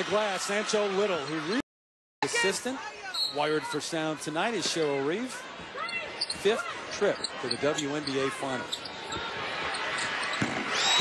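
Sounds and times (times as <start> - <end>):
arena crowd noise: 0.0 - 1.6, 2.2 - 11.0.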